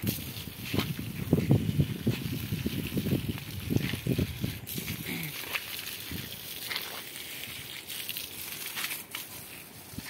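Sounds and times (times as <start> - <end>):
wind on microphone: 0.0 - 5.2
hose water splashing on plants: 0.0 - 10.0.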